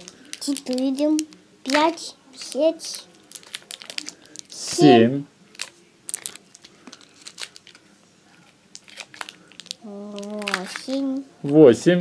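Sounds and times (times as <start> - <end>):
candy wrappers crinkling: 0.0 - 11.8.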